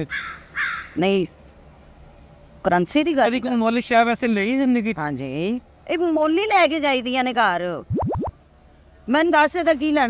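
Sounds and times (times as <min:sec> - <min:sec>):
crow cawing: 0:00.1 - 0:01.0.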